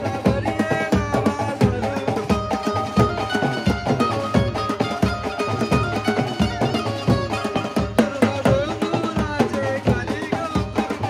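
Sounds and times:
drums beating a driving rhythm: 0.0 - 11.0
melody through loudspeakers: 0.0 - 11.0.

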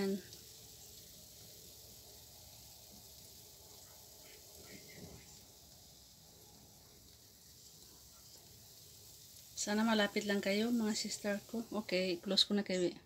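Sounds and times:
faint steady hiss: 0.0 - 13.0.

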